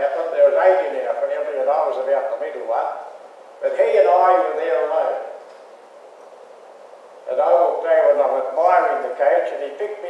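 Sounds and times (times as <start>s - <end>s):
man speaking: 0.0s - 5.4s, 7.3s - 10.0s
faint steady hiss: 0.0s - 10.0s.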